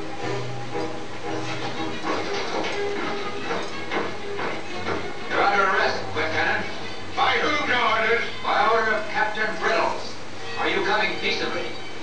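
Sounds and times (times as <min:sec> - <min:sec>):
orchestral music: 0:00.0 - 0:08.8
noisy accents: 0:00.0 - 0:12.0.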